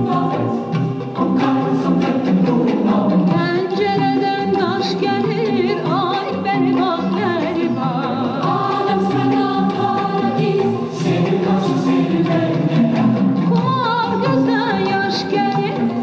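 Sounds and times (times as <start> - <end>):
instrumental accompaniment: 0.0 - 16.0.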